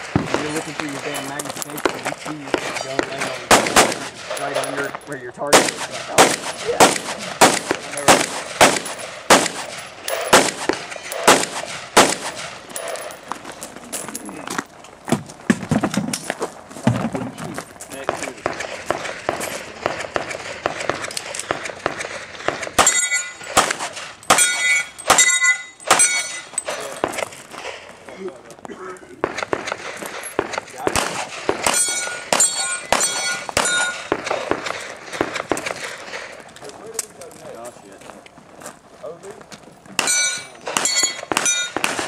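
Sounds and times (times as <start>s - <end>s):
gunshots: 0.0s - 13.1s, 18.0s - 28.3s, 29.2s - 36.5s, 40.0s - 42.0s
metallic ringing: 22.8s - 23.6s, 24.2s - 27.1s, 31.5s - 34.2s, 40.0s - 41.9s.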